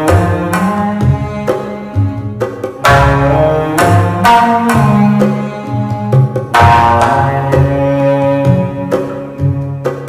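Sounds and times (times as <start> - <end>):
bowed string notes: 0.0 - 10.0
drum percussion: 0.0 - 10.0.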